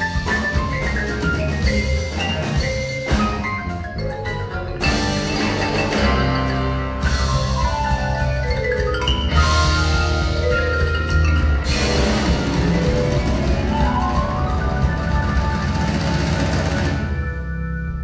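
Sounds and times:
marimba mallet notes: 0:00.0 - 0:18.0
rock band playing: 0:00.0 - 0:18.0
heavy bass line: 0:04.8 - 0:17.8.

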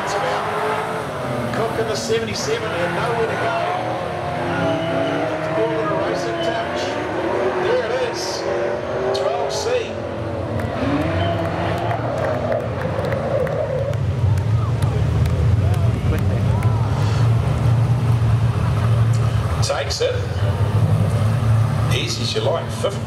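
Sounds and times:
racing car engines revving: 0:00.0 - 0:23.0.

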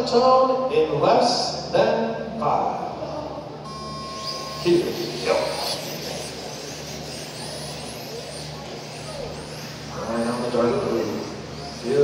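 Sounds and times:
steady low hum: 0:00.0 - 0:12.0
electric motor whines: 0:03.6 - 0:12.0.

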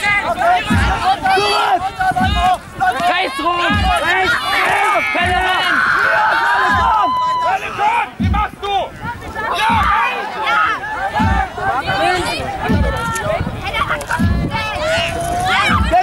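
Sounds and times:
young people shouting: 0:00.0 - 0:16.0
drum beat thumping: 0:00.1 - 0:10.2, 0:11.0 - 0:16.0.

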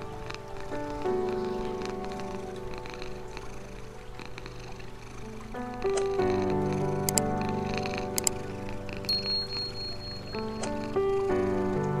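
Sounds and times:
cat purring: 0:00.0 - 0:09.7
slow calm music: 0:00.0 - 0:12.0.

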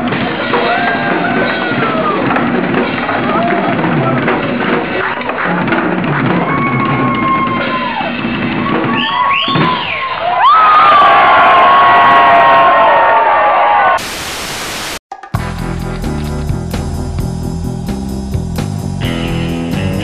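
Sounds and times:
crowd whooping and yelling: 0:00.5 - 0:02.5, 0:06.2 - 0:14.0
drum kit playing: 0:15.1 - 0:20.0
rock music with guitar: 0:15.4 - 0:20.0.

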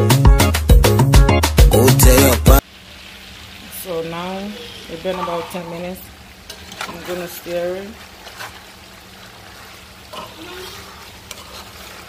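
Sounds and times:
vegetables sizzling in oil: 0:02.6 - 0:12.0
spoon stirring in pot: 0:07.9 - 0:12.0.

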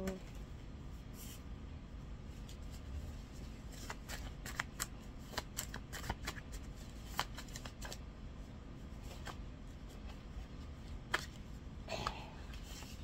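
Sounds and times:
paper cards shuffled by hand: 0:02.3 - 0:08.1, 0:08.9 - 0:11.6, 0:12.4 - 0:13.0.

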